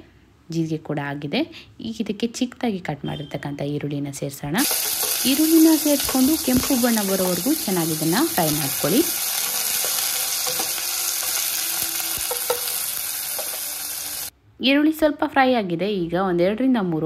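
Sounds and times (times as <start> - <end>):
wooden spatula stirring: 4.6 - 13.7
spatula tapping: 4.6 - 13.8
onions sizzling in hot fat: 4.6 - 14.3.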